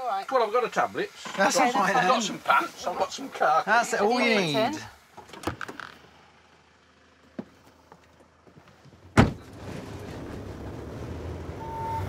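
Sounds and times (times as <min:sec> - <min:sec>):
vehicle engine running: 0:04.4 - 0:12.0
vehicle door slamming: 0:05.2 - 0:06.1, 0:09.0 - 0:10.0
short beep: 0:11.6 - 0:12.0.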